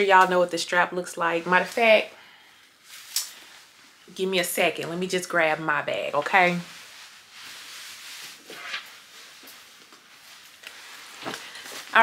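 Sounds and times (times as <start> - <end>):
rustling: 1.4 - 4.0, 5.9 - 12.0.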